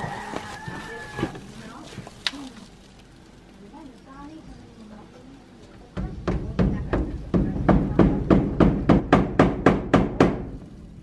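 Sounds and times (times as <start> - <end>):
hammering on timber: 6.0 - 10.6.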